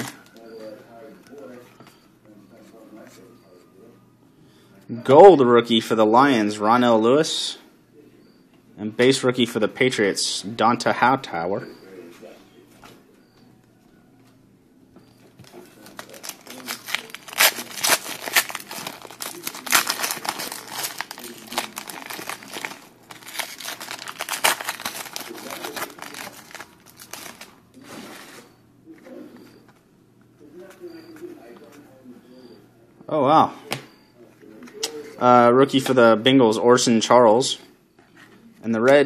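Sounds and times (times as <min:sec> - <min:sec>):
plastic packaging crinkling: 0:15.4 - 0:28.4.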